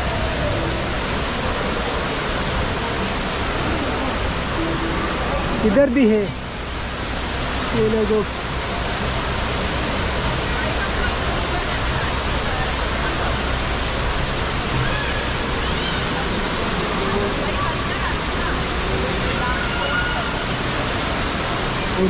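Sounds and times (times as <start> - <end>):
faint crowd voices: 0.0 - 22.0
waterfall rushing: 0.0 - 22.0.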